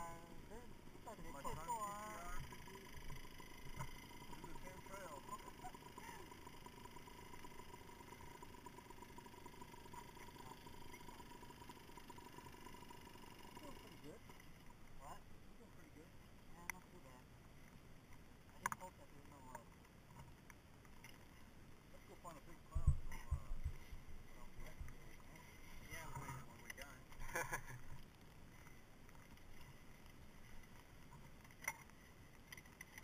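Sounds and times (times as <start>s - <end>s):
faint steady hum: 0.0s - 33.0s
small clicks: 18.1s - 21.4s, 26.1s - 33.0s.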